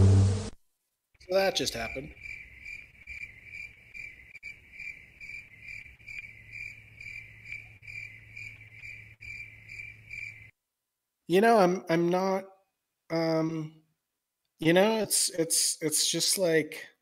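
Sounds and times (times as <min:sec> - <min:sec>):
cricket chirping: 0:01.2 - 0:10.6.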